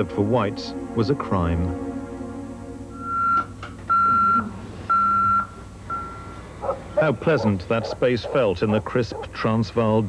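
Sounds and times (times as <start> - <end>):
alarm clock beeping: 2.9 - 8.0.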